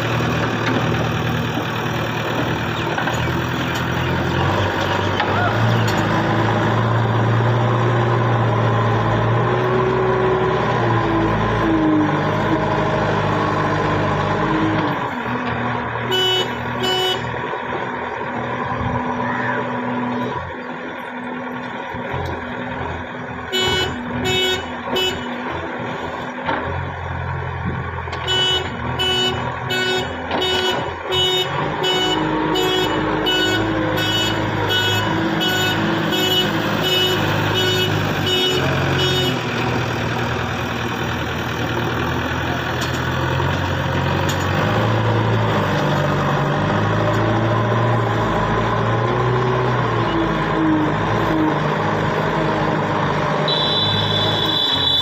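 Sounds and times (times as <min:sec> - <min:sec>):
diesel engine revving: 0:00.0 - 0:55.0.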